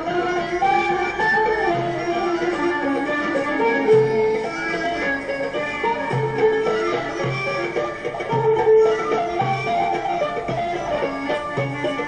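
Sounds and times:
plucked zither melody: 0.0s - 12.0s.

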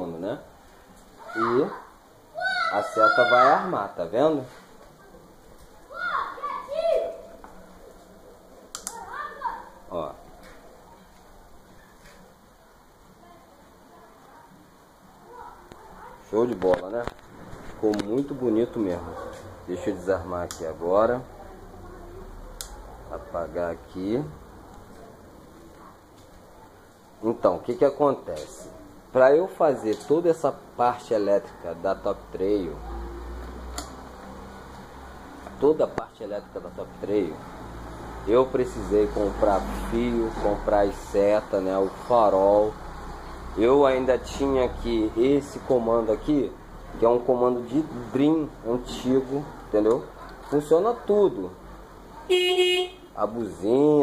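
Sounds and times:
sharp click: 8.7s - 9.0s.

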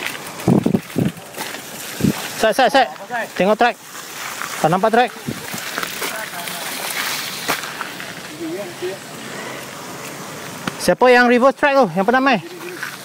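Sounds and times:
mountain bikes on dirt trail: 0.0s - 13.0s.

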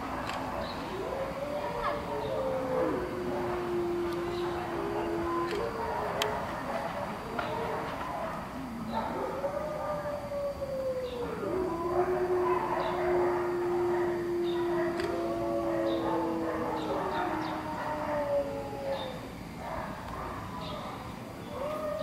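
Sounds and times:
animals howling: 0.0s - 22.0s.

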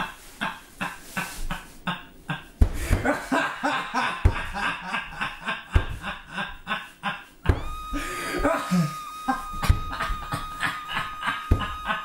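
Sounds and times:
person laughing: 0.0s - 12.0s
thumps on microphone: 7.5s - 8.6s, 9.4s - 12.0s.

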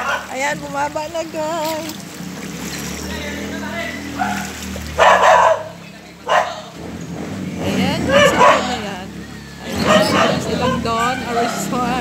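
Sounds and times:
dog barking: 0.0s - 0.4s, 4.1s - 6.8s, 8.1s - 8.8s, 9.7s - 11.8s.

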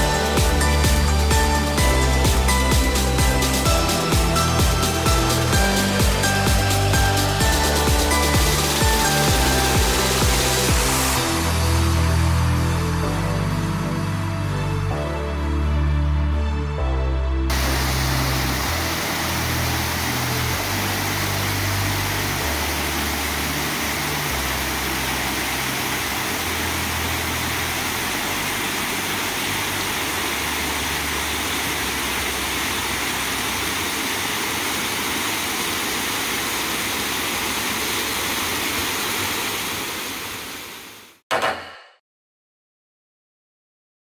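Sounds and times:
water rushing over rocks: 0.0s - 11.6s, 17.5s - 41.2s.

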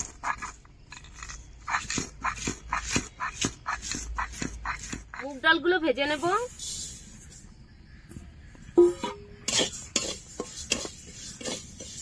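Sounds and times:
spices crushed with stone roller: 0.0s - 5.3s, 9.4s - 12.0s.

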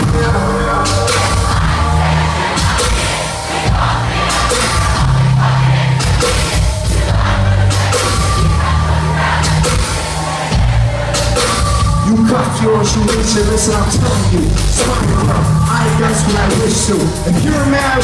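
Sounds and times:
live hip-hop music: 0.0s - 18.0s.

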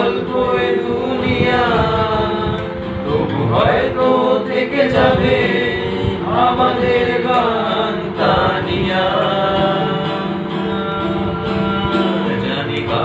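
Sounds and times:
acoustic guitar: 0.0s - 13.0s
young men singing: 0.0s - 13.0s.

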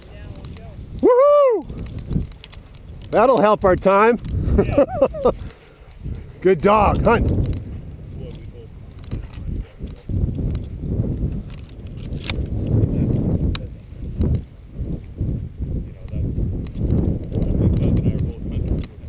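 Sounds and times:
sharp clicks: 11.5s - 12.7s.

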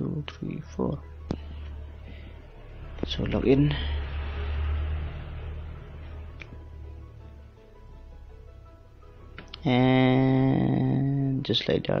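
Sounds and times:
steady low hum: 0.0s - 9.6s.

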